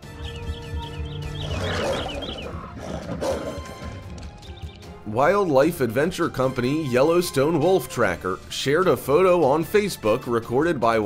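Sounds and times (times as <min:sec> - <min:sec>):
background music: 0:00.0 - 0:11.0
bear and wolf growling: 0:01.4 - 0:04.0.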